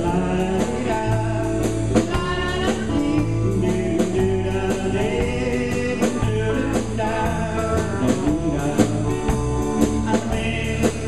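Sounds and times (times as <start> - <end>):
bass guitar: 0.0 - 11.0
drum kit with cymbal beat: 0.0 - 11.0
electric guitars: 0.0 - 11.0
man singing: 0.0 - 11.0.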